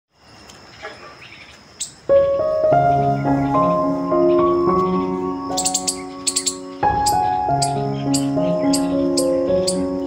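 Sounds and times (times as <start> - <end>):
crickets trilling: 0.1 - 10.0
bird chirps: 0.7 - 10.0.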